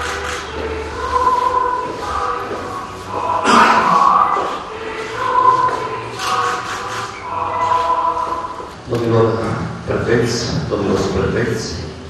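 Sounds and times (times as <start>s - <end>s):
choir singing held notes: 0.0s - 10.2s.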